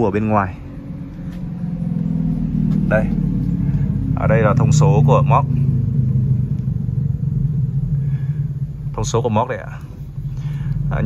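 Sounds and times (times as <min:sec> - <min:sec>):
motor running: 0:00.5 - 0:11.0.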